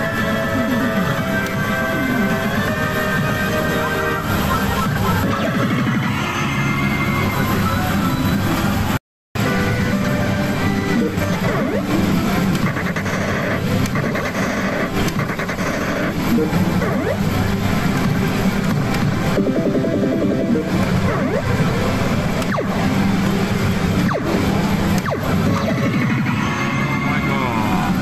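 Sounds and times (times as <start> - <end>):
slot machine game music: 0.0 - 8.8, 9.4 - 28.0
slot parlour din: 1.2 - 8.7, 9.6 - 28.0.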